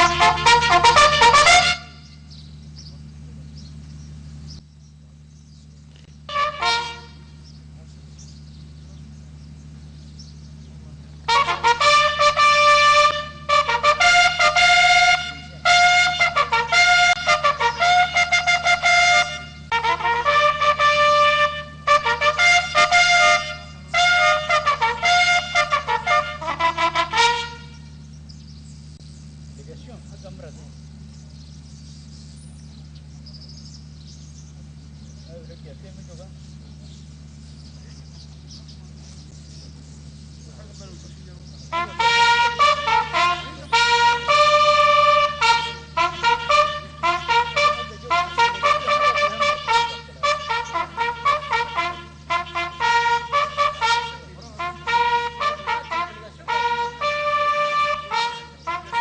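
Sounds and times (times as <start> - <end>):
bugle call: 0.0 - 2.3, 6.3 - 7.4, 11.2 - 28.1, 41.6 - 59.0.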